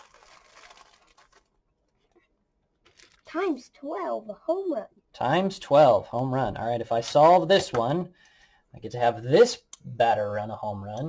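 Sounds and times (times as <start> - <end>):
plastic bag rustling: 0.0 - 3.4.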